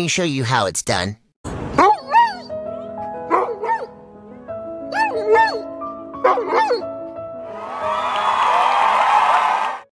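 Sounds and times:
background music: 0:01.7 - 0:09.9
crowd cheering: 0:07.4 - 0:09.9.

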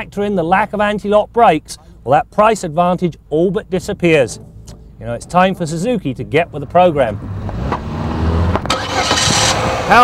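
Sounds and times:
car engine humming: 0:00.0 - 0:10.0.

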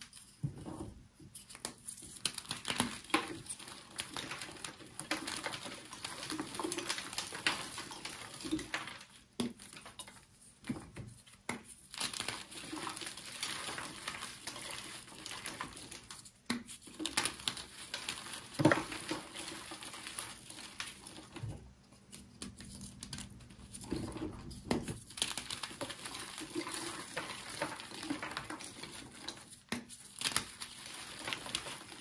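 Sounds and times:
powdery block crunching: 0:02.2 - 0:10.0, 0:11.9 - 0:21.5, 0:23.0 - 0:32.0.

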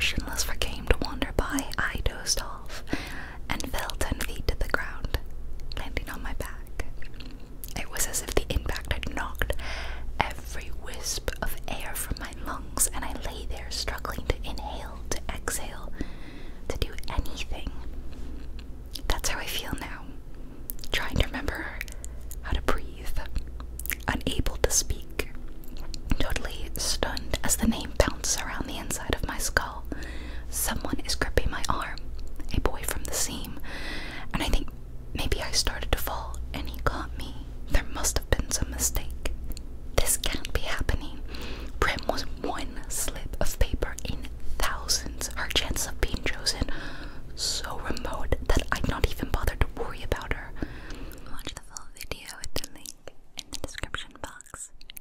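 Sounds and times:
woman whispering: 0:00.0 - 0:09.6, 0:10.2 - 0:16.0, 0:16.7 - 0:17.9, 0:19.0 - 0:20.2, 0:20.8 - 0:33.6, 0:34.3 - 0:39.4, 0:40.0 - 0:41.2, 0:41.8 - 0:46.7, 0:47.4 - 0:50.6, 0:51.2 - 0:54.8
crisp mouth clicks: 0:20.7 - 0:21.0, 0:23.3 - 0:24.1, 0:25.3 - 0:26.2, 0:50.9 - 0:55.0.

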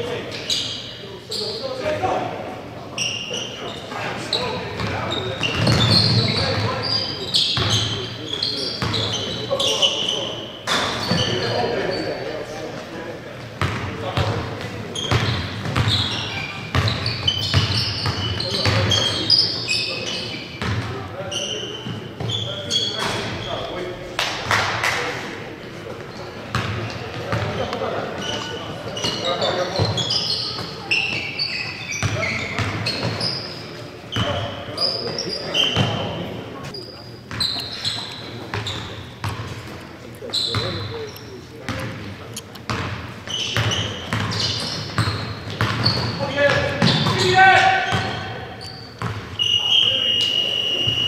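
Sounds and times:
sneakers squeaking: 0:00.0 - 0:51.0
basketballs bouncing on hardwood: 0:15.1 - 0:16.1, 0:42.7 - 0:47.3.

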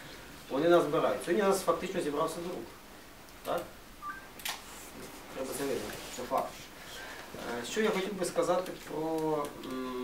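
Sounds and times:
man speaking: 0:00.5 - 0:02.7, 0:05.3 - 0:06.8, 0:07.4 - 0:10.0
two-note electronic beep: 0:04.0 - 0:04.3.

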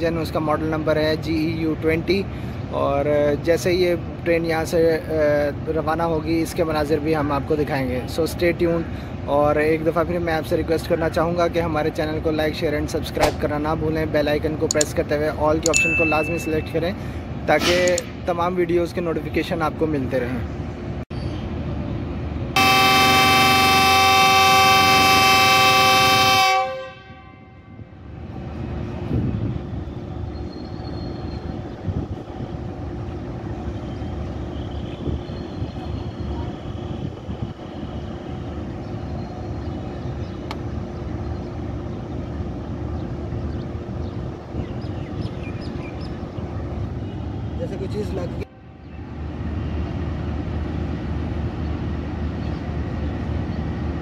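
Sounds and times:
station background noise: 0:00.0 - 0:26.5, 0:28.0 - 0:54.0
locomotive air horn blast: 0:22.6 - 0:28.0
locomotive engine running: 0:28.0 - 0:54.0.

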